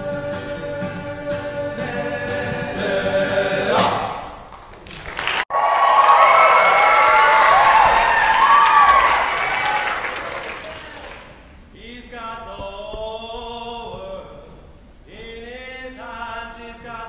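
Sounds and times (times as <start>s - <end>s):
boys' choir singing: 0.0s - 4.4s
large choir with gliding pitches: 0.0s - 4.4s
acoustic guitar: 0.0s - 4.5s.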